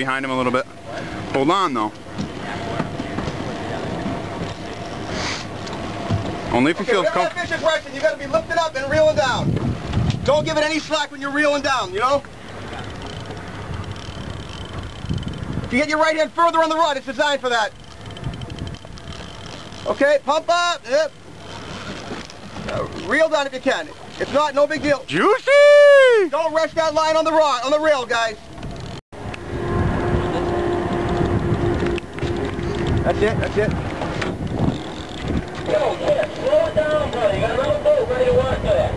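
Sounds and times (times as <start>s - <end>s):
boat at sea: 0.0s - 38.9s
wind on microphone: 8.3s - 10.8s, 12.9s - 15.9s, 18.0s - 19.6s, 28.4s - 38.9s.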